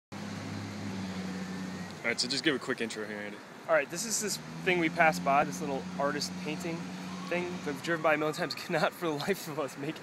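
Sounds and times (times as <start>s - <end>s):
car engine humming: 0.1s - 10.0s
street noise: 0.1s - 10.0s.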